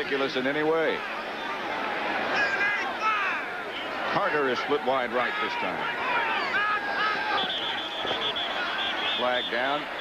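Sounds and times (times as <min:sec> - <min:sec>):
stadium crowd: 0:00.0 - 0:10.0
people shouting: 0:01.0 - 0:10.0
referee whistle trilling: 0:06.9 - 0:10.0.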